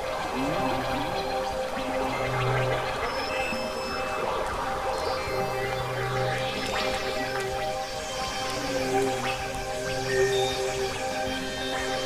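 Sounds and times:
crackling gurgling noise texture: 0.0 - 12.0
held synth drones: 0.0 - 12.0.

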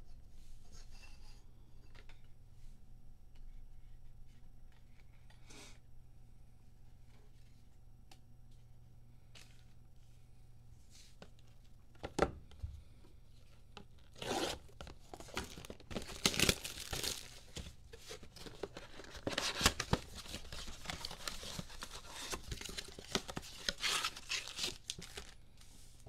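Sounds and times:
wrap and cardboard tearing: 14.1 - 17.5, 19.0 - 25.4.

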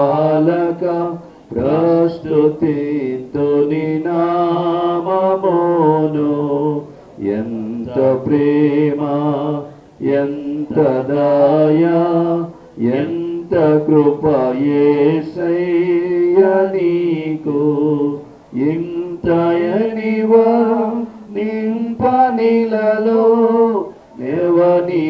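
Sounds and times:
man singing slow devotional song: 0.0 - 25.0.

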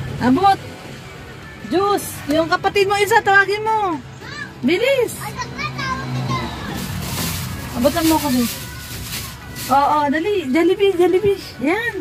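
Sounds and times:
background music: 0.0 - 12.0
children talking: 3.8 - 12.0.

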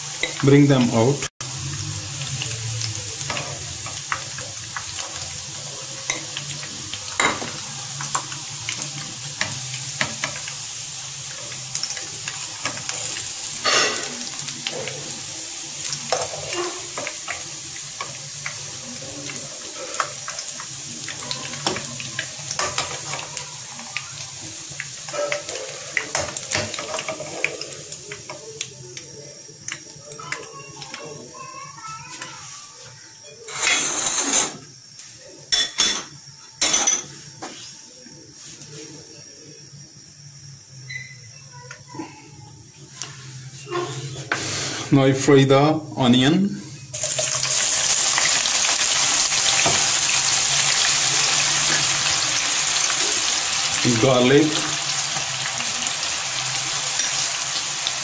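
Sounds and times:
oil sizzling in a pot: 0.0 - 58.0.

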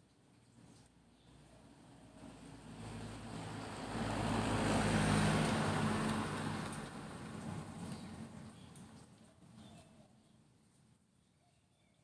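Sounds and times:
car driving past: 2.1 - 8.4.

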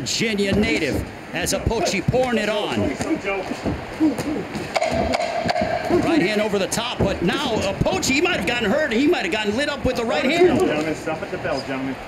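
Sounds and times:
punches smacking: 0.4 - 8.6
people shouting: 1.4 - 8.7.

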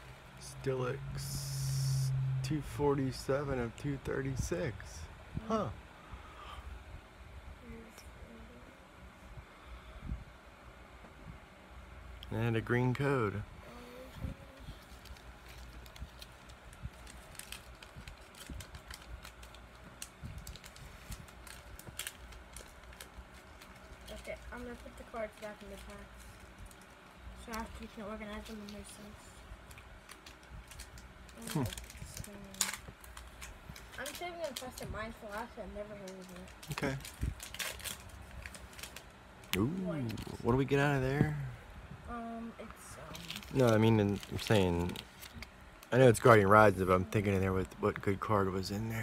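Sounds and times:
foil wrapper crinkling: 14.8 - 28.8, 29.6 - 40.6, 43.1 - 48.2.

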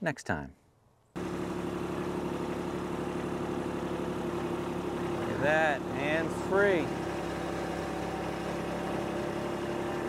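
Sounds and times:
tractor diesel engine running: 1.2 - 10.0.

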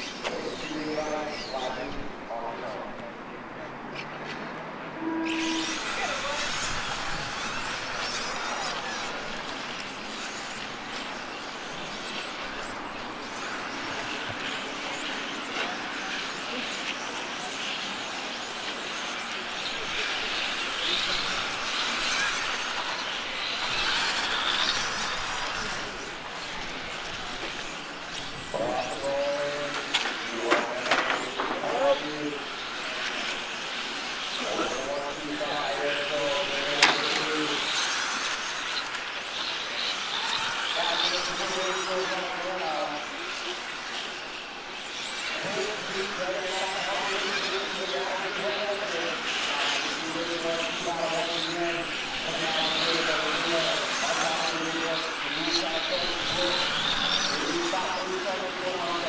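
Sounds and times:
electric rc car motors whining: 0.0 - 2.7, 5.0 - 59.0
voices: 0.0 - 59.0.

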